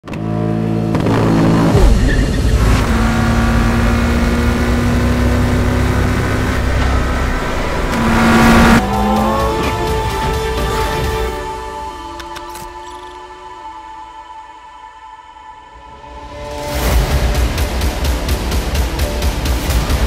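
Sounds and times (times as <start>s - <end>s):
race car engine revving: 0.0s - 11.3s.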